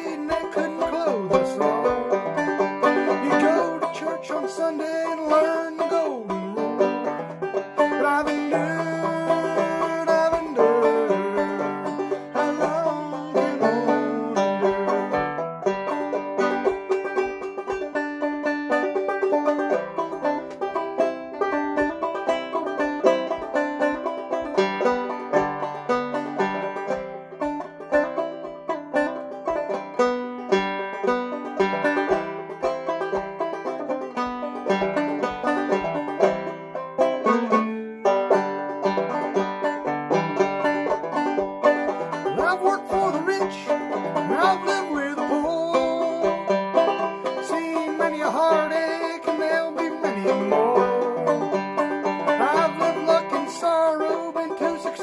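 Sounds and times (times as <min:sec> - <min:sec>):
banjo picking: 0:00.0 - 0:55.0.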